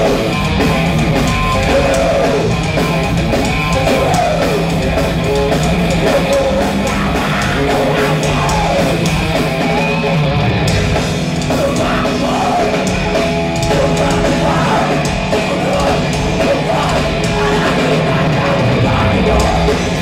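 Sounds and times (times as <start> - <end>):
distorted electric guitars: 0.0 - 20.0
pounding drum kit: 0.0 - 20.0.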